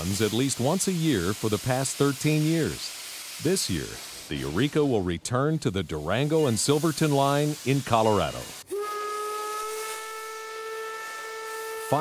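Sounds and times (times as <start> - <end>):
steam hissing: 0.0 - 12.0
steam whistle blast: 7.6 - 12.0.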